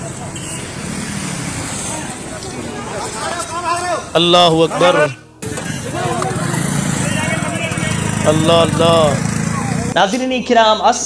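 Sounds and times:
street traffic noise: 0.0s - 11.0s.

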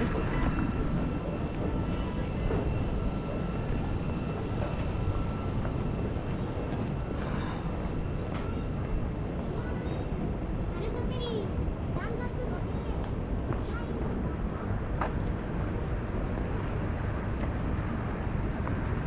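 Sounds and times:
faint steady tones: 0.0s - 19.0s
traffic rumble: 0.0s - 19.0s.

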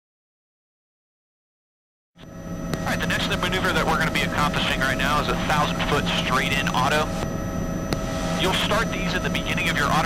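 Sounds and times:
helicopter turbine and rotor drone: 2.2s - 10.0s
man talking over intercom: 2.9s - 7.1s, 8.4s - 10.0s.

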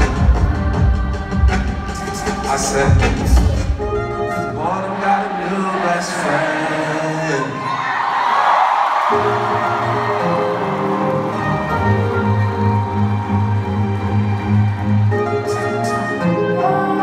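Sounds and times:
crowd noise: 0.0s - 17.0s
live concert music: 0.0s - 17.0s.

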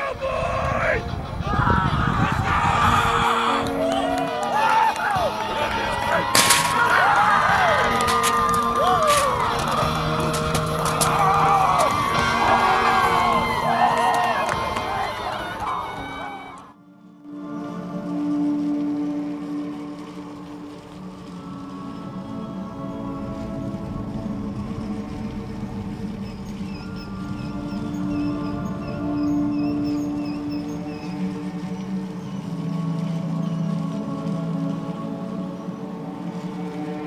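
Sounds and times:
slow music of long held tones: 0.0s - 37.0s.

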